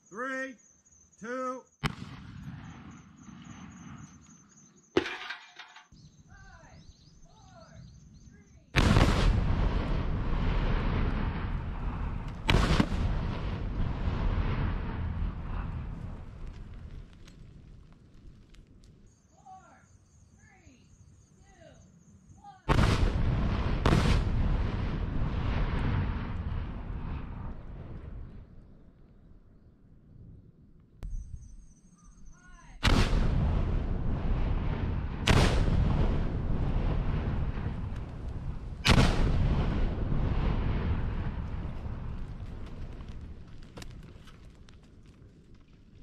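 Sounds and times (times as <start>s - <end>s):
explosive blasts: 1.8s - 4.0s, 8.8s - 17.2s, 22.7s - 28.5s, 32.8s - 44.3s.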